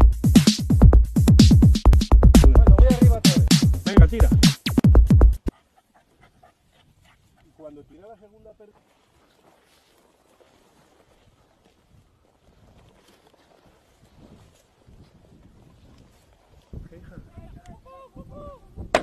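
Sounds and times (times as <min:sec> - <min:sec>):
electronic music: 0:00.0 - 0:05.5
footsteps through dry scrub: 0:06.7 - 0:17.3.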